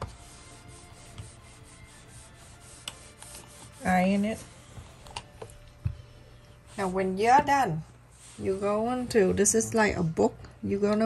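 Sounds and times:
steam iron rubbing over fabric: 0.0s - 5.1s, 6.7s - 9.9s.

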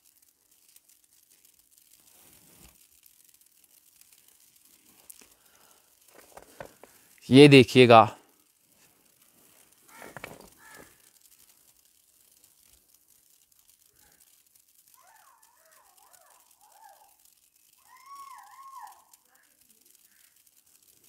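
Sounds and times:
bird calls: 9.9s - 11.0s, 15.0s - 17.2s.

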